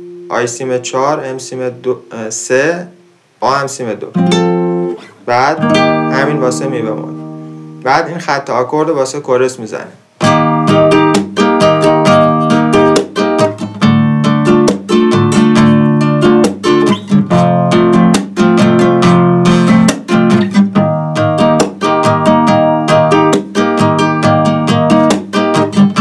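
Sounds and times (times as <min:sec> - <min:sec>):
nylon-string guitar strumming chords: 0:00.0 - 0:08.7, 0:10.1 - 0:26.0.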